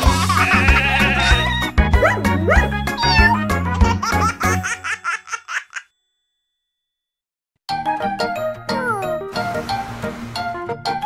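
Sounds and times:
baby giggling: 2.1 - 5.9.

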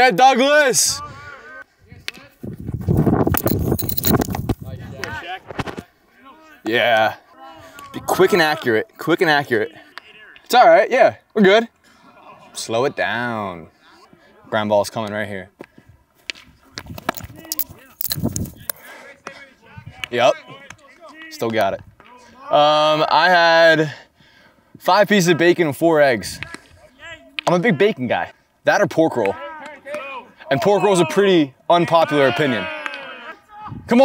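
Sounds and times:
clothing rustling on microphone: 2.4 - 4.8, 16.8 - 18.8.

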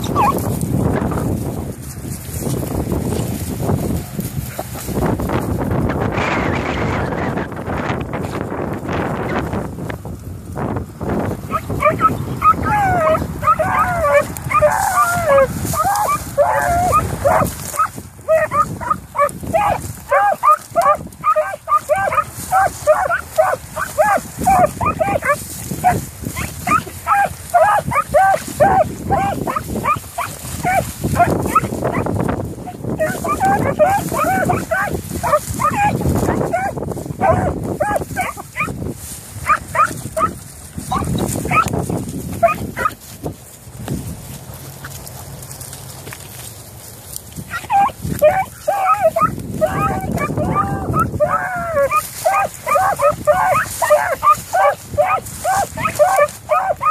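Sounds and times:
hounds baying: 0.0 - 1.3, 11.4 - 43.2, 47.4 - 56.9
brush rustling: 0.0 - 56.9
wind buffeting microphone: 0.0 - 56.9.

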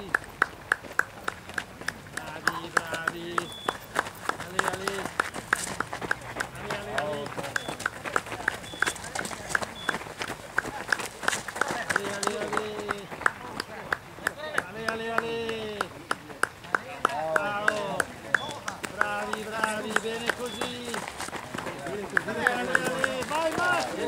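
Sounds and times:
footsteps of runners jogging: 0.0 - 24.0
voices calling out: 0.0 - 24.0
short high beeps: 3.5 - 3.8, 8.6 - 9.1, 18.3 - 18.6.

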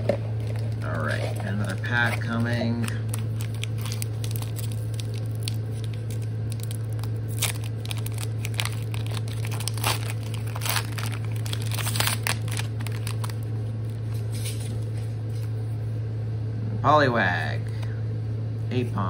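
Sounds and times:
steady low hum: 0.0 - 19.0
foil wrapper tearing and crinkling: 0.4 - 14.8.

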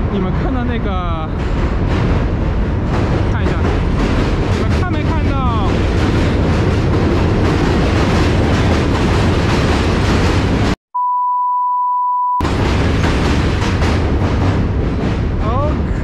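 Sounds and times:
subway train rumbling on bridge: 0.0 - 10.8, 12.4 - 16.0.

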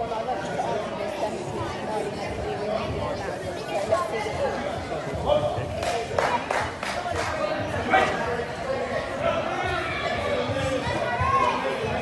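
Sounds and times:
crowd of spectators chattering: 0.0 - 12.0.

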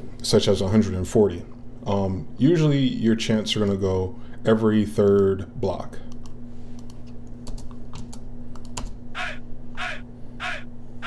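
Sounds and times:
sampled vocal shouts: 9.2 - 10.7.

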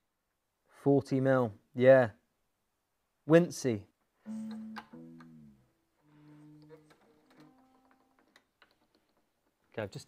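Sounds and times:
guitar strings ringing: 4.3 - 8.4.

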